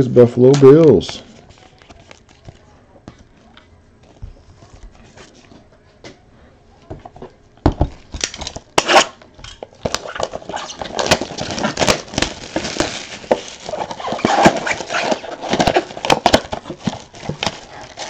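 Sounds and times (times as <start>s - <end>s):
cards and wrappers rustling: 9.6s - 18.0s.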